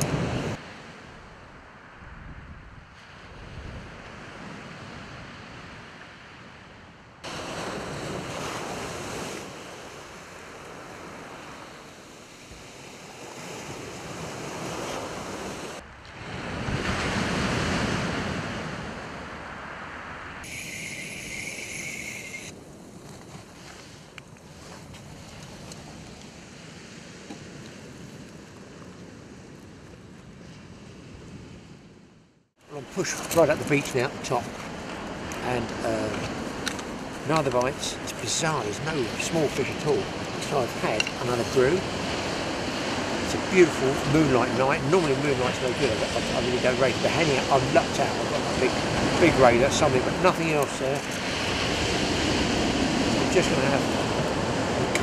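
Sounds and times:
wind buffeting microphone: 0:00.0 - 0:06.0
surf washing on shingle: 0:07.3 - 0:15.8, 0:32.7 - 0:55.0.

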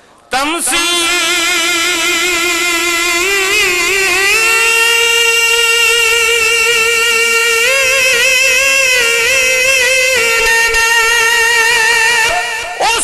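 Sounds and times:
man singing long note with vibrato: 0:00.3 - 0:13.0.

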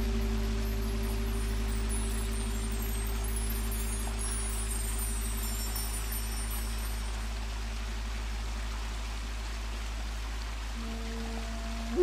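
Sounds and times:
even hiss: 0:00.0 - 0:12.0
meditative drone music: 0:00.0 - 0:12.0.

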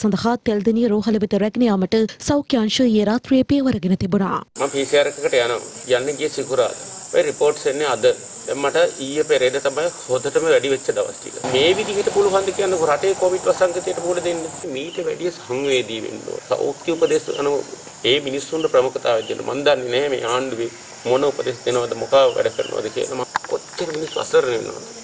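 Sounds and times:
man talking: 0:04.6 - 0:24.8
crickets chirping: 0:04.6 - 0:25.0.

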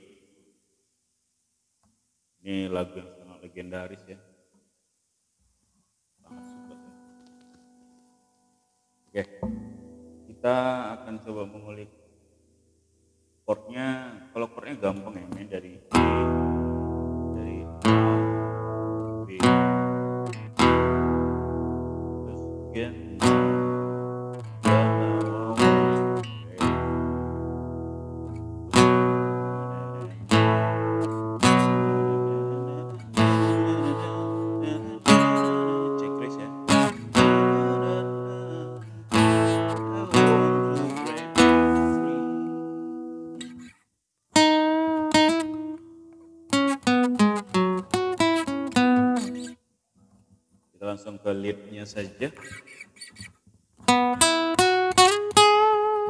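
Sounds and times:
acoustic guitar strumming chords: 0:06.3 - 0:08.4, 0:09.3 - 0:10.8, 0:15.9 - 0:43.8, 0:44.4 - 0:49.6, 0:53.8 - 0:56.0
guitar single notes picked: 0:06.3 - 0:08.4, 0:09.1 - 0:10.6, 0:15.3 - 0:43.7, 0:44.4 - 0:49.6.

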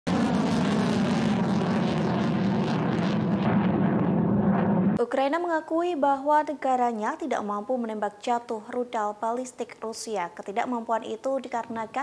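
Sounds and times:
rocket motor rushing: 0:00.1 - 0:05.0.

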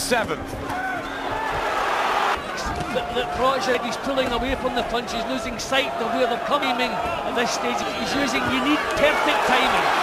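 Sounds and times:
murmur of voices: 0:00.2 - 0:10.0
crowd roar: 0:00.7 - 0:10.0.

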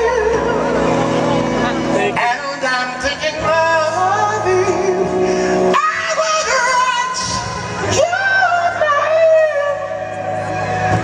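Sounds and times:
band accompaniment: 0:00.0 - 0:11.0
man singing soul ballad: 0:00.0 - 0:11.0.

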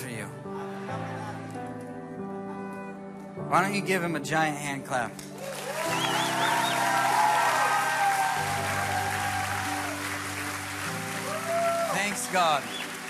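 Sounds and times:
soft worship band music: 0:00.0 - 0:13.0
congregation applauding: 0:05.2 - 0:13.0.

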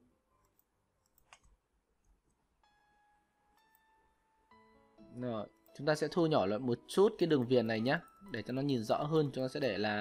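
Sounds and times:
faint sustained music notes: 0:02.6 - 0:10.0.

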